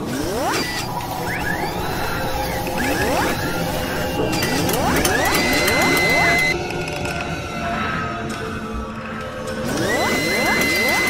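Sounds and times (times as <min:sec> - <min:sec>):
high gliding tone: 0:00.4 - 0:06.6.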